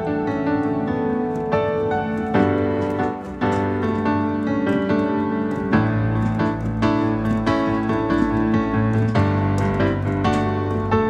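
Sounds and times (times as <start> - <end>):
busy piano chords: 0.0 - 11.0.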